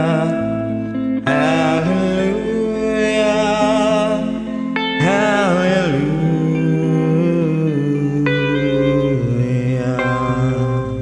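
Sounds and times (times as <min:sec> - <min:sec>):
acoustic guitar: 0:00.0 - 0:11.0
man singing: 0:00.0 - 0:11.0.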